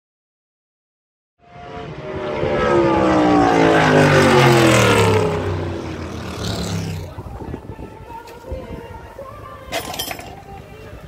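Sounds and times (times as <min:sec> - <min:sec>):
racing car engine at high revs: 0:01.4 - 0:07.2.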